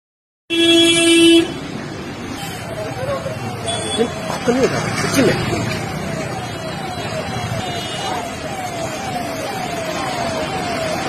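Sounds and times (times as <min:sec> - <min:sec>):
vehicle horn blast: 0:00.5 - 0:01.6
street noise: 0:00.5 - 0:11.0.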